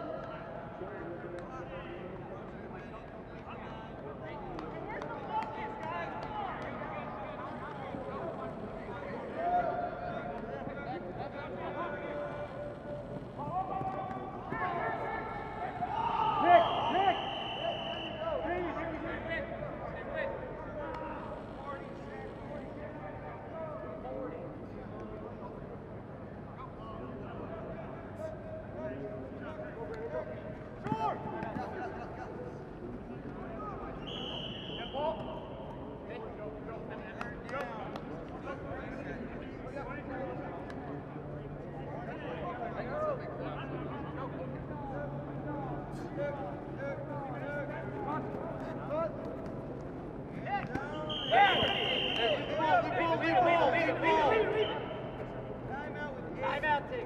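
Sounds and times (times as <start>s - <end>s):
players calling and chatting: 0.1s - 57.0s
referee's whistle blasts: 16.4s - 18.4s, 34.0s - 35.5s, 50.9s - 52.7s.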